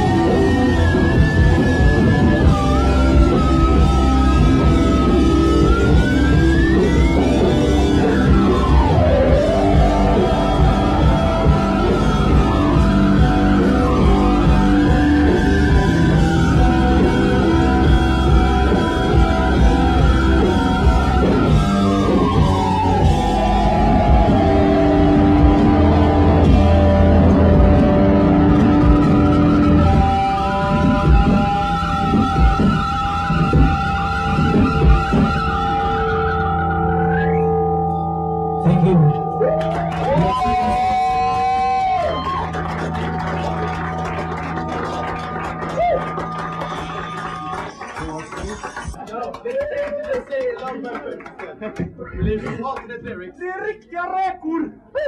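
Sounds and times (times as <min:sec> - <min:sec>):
rock band sustained chord: 0:00.0 - 0:36.8
drums: 0:00.0 - 0:37.2, 0:38.7 - 0:53.1
electric guitars: 0:00.0 - 0:49.4.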